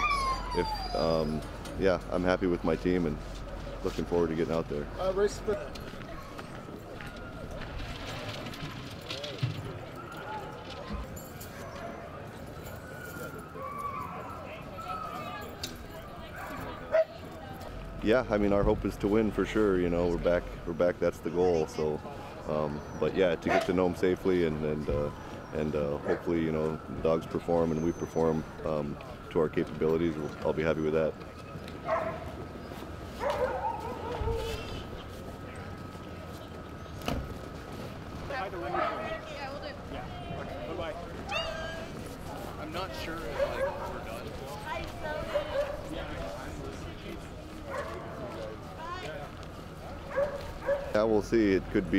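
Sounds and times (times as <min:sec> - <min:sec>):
dogs whining and yelping: 0:00.0 - 0:01.7, 0:09.9 - 0:15.4, 0:22.7 - 0:23.7, 0:27.6 - 0:28.7, 0:31.8 - 0:34.8, 0:41.3 - 0:42.0
crowd chatter: 0:00.0 - 0:51.9.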